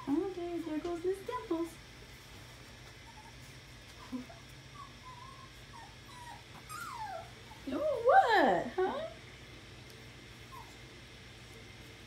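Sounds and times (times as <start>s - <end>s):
puppy whining: 2.8s - 8.0s, 10.4s - 11.0s.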